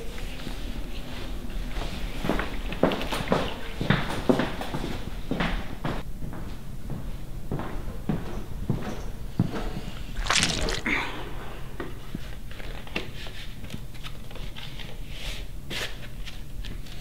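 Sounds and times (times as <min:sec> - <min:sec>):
footsteps: 0:10.2 - 0:10.9.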